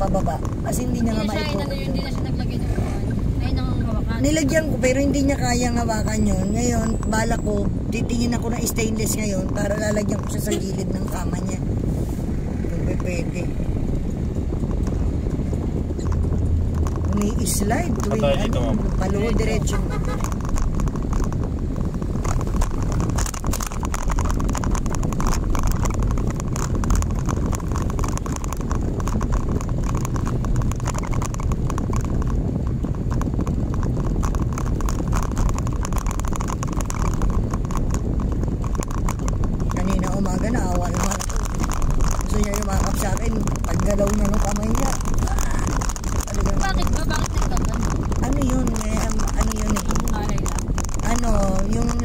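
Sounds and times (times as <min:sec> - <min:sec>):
person's voice: 0:00.0 - 0:11.6, 0:17.1 - 0:20.1, 0:39.8 - 0:41.5, 0:46.3 - 0:52.0
car engine and tyres rumbling: 0:00.0 - 0:52.0.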